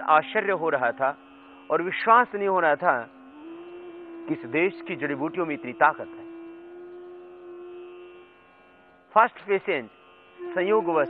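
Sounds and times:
sustained drone note: 0:00.0 - 0:11.0.

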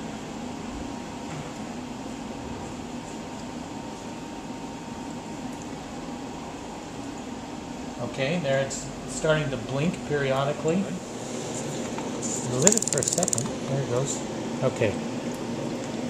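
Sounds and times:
gas generator humming and hissing: 0:00.0 - 0:16.0.

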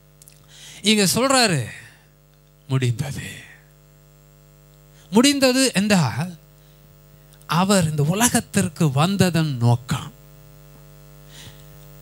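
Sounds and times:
electrical mains hum: 0:00.0 - 0:12.0
man speaking into a microphone: 0:00.8 - 0:02.0, 0:02.7 - 0:03.7, 0:05.1 - 0:06.4, 0:07.5 - 0:10.2.

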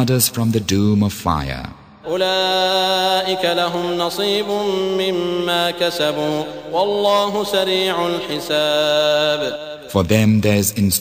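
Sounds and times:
man chanting recitation: 0:00.0 - 0:11.0.

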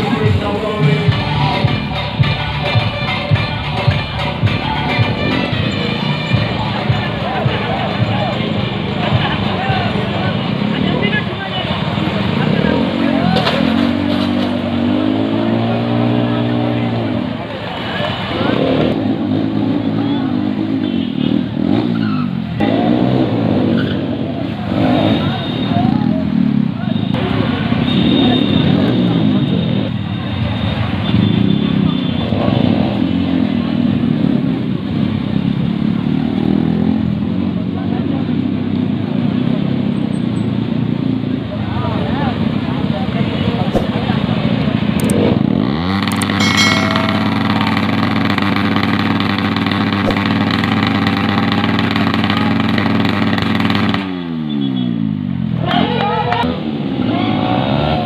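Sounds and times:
crowd voices: 0:00.0 - 0:35.8, 0:40.8 - 0:50.4, 0:55.4 - 0:58.0
motorcycle engine revving: 0:11.8 - 0:17.4, 0:18.2 - 0:29.5, 0:42.4 - 0:58.0.

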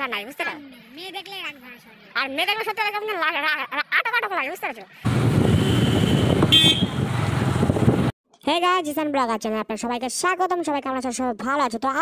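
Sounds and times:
auto-rickshaw passing: 0:05.0 - 0:08.1
vehicle engines running: 0:05.0 - 0:08.1
short high horn toot: 0:05.4 - 0:07.0.

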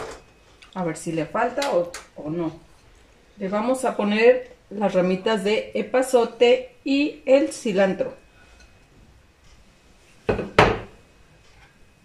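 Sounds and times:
clay plate knocking on countertop: 0:10.3 - 0:10.9.

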